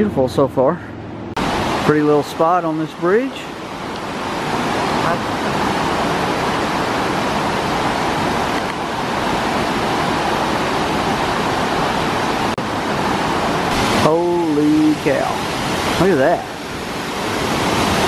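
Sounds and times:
creek water rushing over rocks: 1.4 - 18.0.

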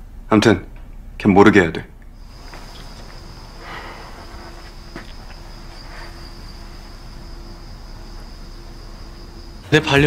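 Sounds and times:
crickets trilling: 2.1 - 10.0.

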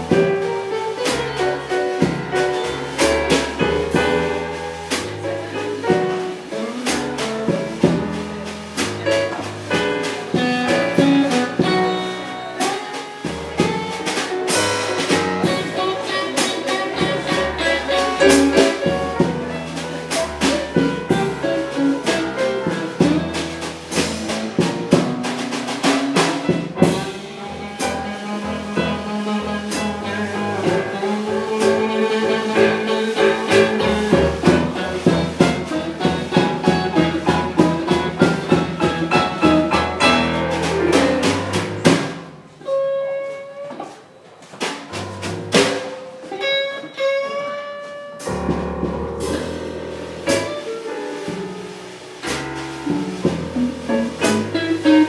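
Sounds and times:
steady drumming: 0.0 - 42.6, 44.6 - 46.4, 48.2 - 55.0
blues band playing instrumental: 0.0 - 55.0.

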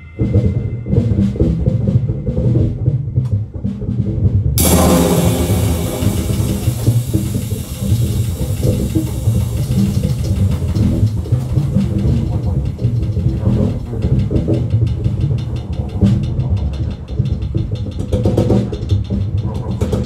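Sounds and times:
cymbal and drum strikes: 4.6 - 14.9.

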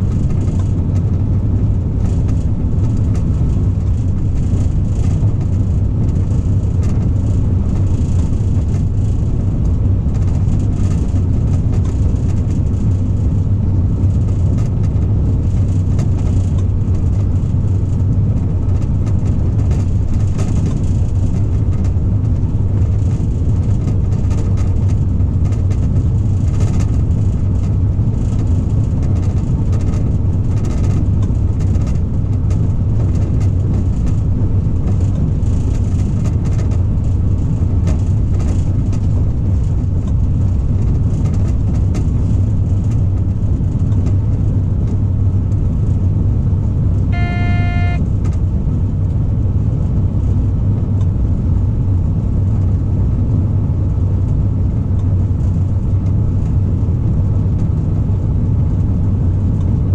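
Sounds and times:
locomotive engine droning: 0.0 - 50.3.

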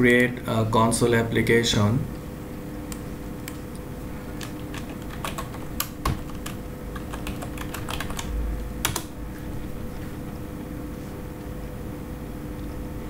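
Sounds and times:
computer keyboard key clicks: 4.4 - 9.1.

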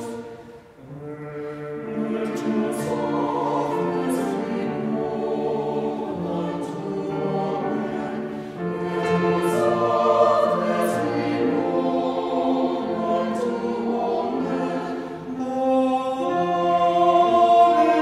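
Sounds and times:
mixed choir singing: 0.0 - 18.0.

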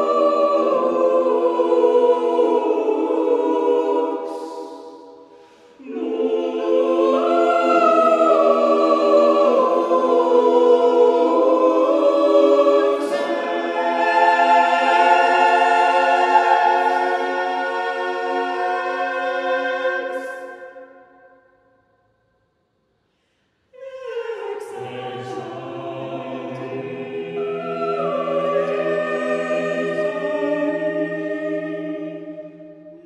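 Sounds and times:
choir singing a cappella: 0.0 - 21.5, 23.8 - 33.0.

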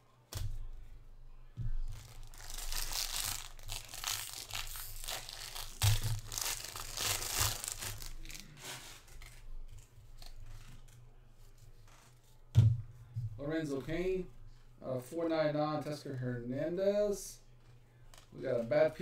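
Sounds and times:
wrapper tearing and crinkling: 1.8 - 10.4.

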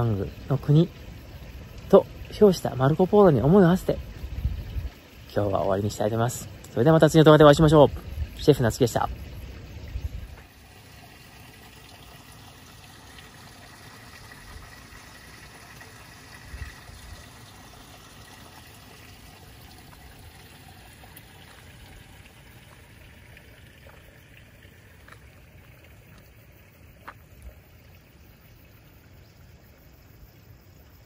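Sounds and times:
trickle of running water: 0.0 - 31.0.

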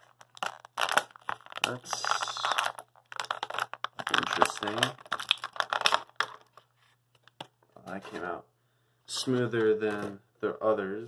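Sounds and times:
plastic packaging crackling: 0.0 - 7.4.

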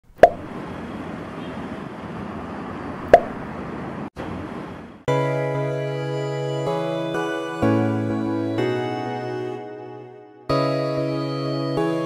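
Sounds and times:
sharp pops: 0.1 - 0.5, 3.1 - 3.4.

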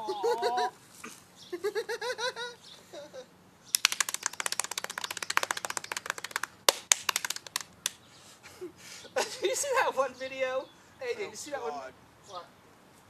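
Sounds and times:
hands slapping bare belly: 3.7 - 8.0.

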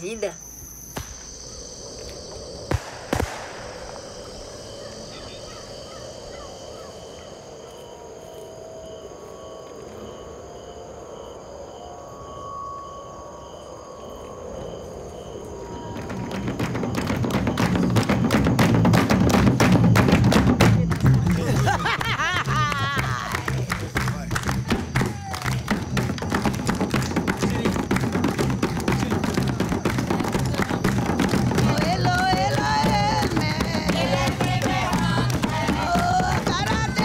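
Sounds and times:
crickets chirping: 0.0 - 37.0
sharp cracks: 0.9 - 4.7
fast drumming: 16.0 - 37.0.

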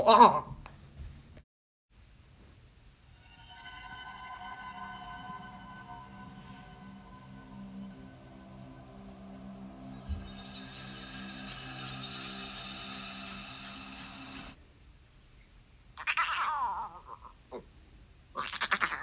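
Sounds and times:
held musical chord: 3.1 - 14.6
animal-like cries: 16.0 - 17.4, 18.4 - 19.0.

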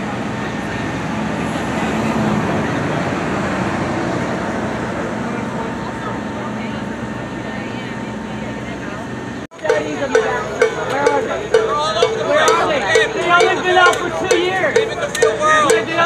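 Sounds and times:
traffic hum: 0.0 - 16.0
people talking indistinctly: 4.9 - 16.0.

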